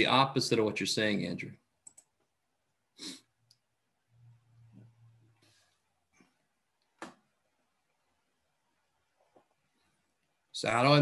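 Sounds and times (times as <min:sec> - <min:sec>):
faint computer clicks: 0:01.8 - 0:02.3
faint low hum: 0:03.4 - 0:10.6.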